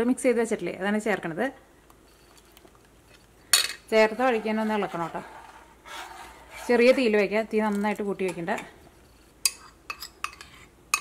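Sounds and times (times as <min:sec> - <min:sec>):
metal spoon clinking on bowl: 0:09.5 - 0:11.0.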